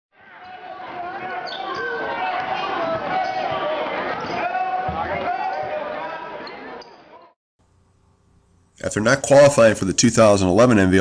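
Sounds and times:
hubbub of voices: 0:00.2 - 0:07.4.

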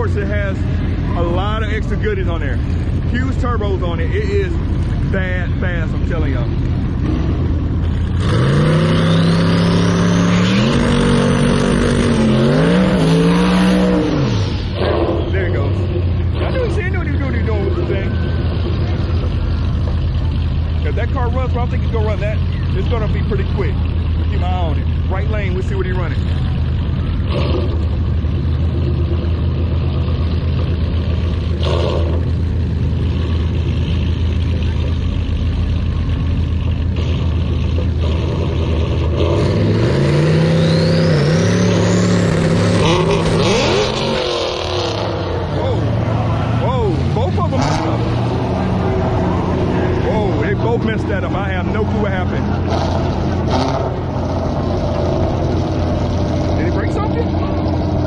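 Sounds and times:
race cars idling: 0:00.0 - 0:13.0, 0:13.8 - 0:58.0
engines revving hard: 0:00.0 - 0:58.0.

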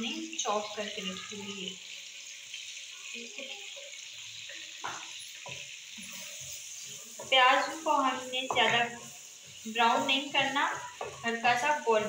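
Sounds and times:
onions sizzling in hot oil: 0:00.0 - 0:12.0.

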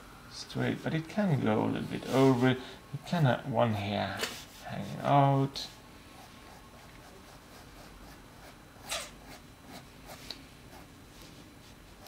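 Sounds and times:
pen scratching on paper: 0:06.2 - 0:10.9.

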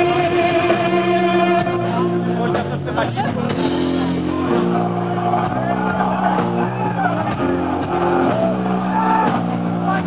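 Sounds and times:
distorted guitars sustained chords: 0:00.0 - 0:10.0
doom metal band playing: 0:00.0 - 0:10.0.

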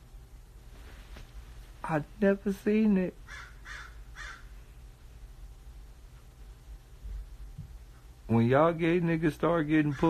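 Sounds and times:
faint low hum: 0:00.0 - 0:10.0
crow cawing: 0:03.2 - 0:04.6, 0:09.8 - 0:10.0.

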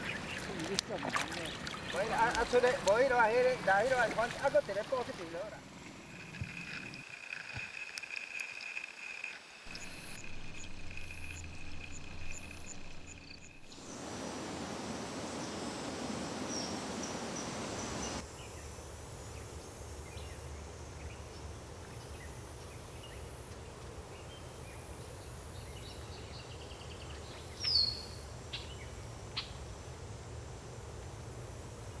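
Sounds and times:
insects buzzing: 0:00.0 - 0:32.0.

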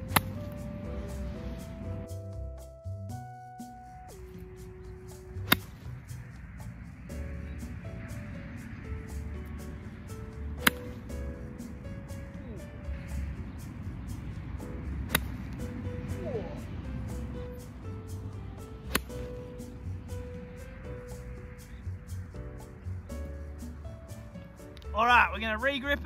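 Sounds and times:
golf club striking ball: 0:00.0 - 0:01.8, 0:05.0 - 0:12.3, 0:13.1 - 0:16.2, 0:16.9 - 0:21.8
background music with steady beat: 0:00.0 - 0:26.0.

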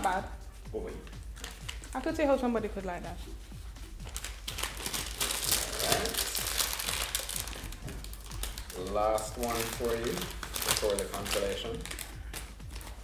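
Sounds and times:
plastic chip bag crinkling: 0:04.0 - 0:13.0.

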